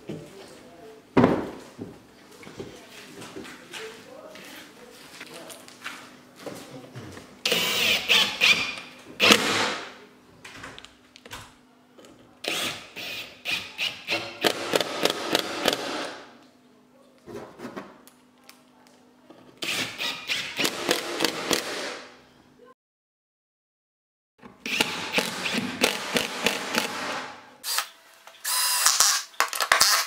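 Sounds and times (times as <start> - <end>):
cordless drill driving screws: 7.5 - 9.4, 19.6 - 21.7, 24.6 - 30.0.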